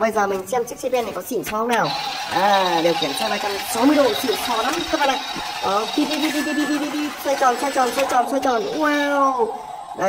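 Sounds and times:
person speaking: 0.0 - 10.0
long steady pitched tone: 1.9 - 10.0.

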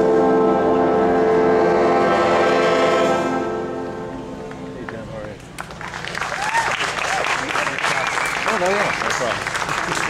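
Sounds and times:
audience applause: 4.8 - 10.0.

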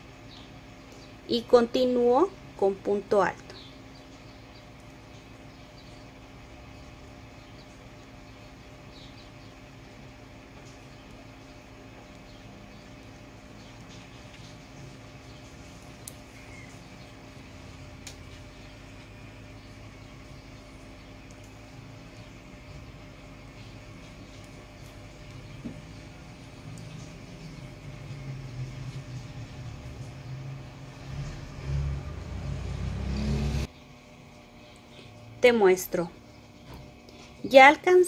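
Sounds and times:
low rumble with hum: 0.0 - 38.0.

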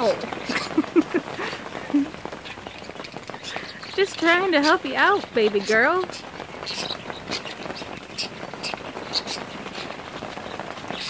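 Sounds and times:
rain on plastic cover: 0.0 - 11.0.

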